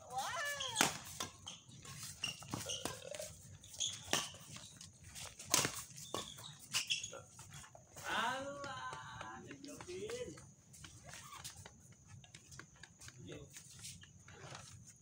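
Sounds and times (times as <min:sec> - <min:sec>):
rackets striking shuttlecock: 0:00.2 - 0:03.3, 0:05.4 - 0:06.4.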